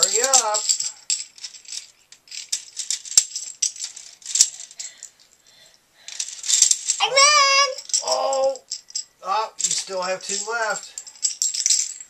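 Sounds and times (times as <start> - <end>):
child shouting high-pitched: 7.0 - 8.6.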